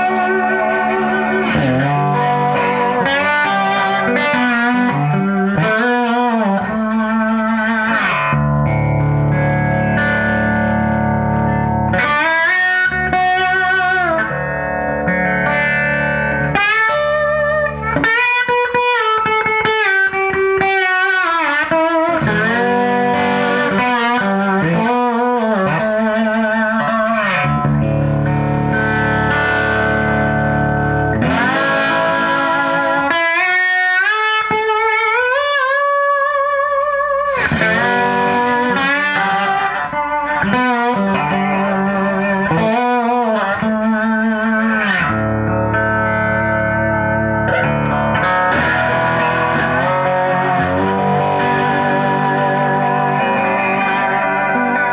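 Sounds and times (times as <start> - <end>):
slide electric guitar: 0.0 - 54.9.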